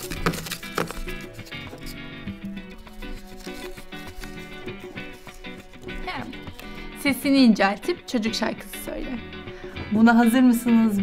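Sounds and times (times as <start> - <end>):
background music of held notes: 0.0 - 11.0.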